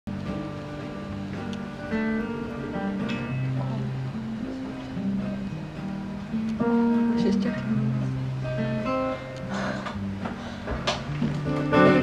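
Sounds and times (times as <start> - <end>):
acoustic guitar plucked: 0.1 - 12.0.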